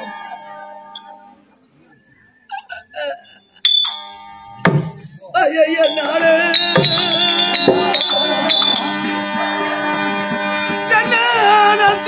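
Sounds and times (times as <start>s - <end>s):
harmonium chord: 0.0s - 1.5s, 4.0s - 5.2s, 6.0s - 12.0s
hand cymbals ringing: 0.9s - 1.2s, 3.6s - 5.1s, 5.8s - 9.2s.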